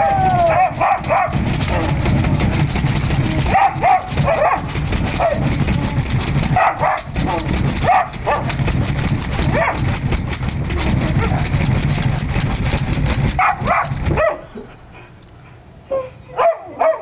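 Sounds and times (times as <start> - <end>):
dogs whining and yelping: 0.0 - 2.0, 13.4 - 17.0
low hum: 0.0 - 15.6
claws scratching glass: 0.5 - 14.2.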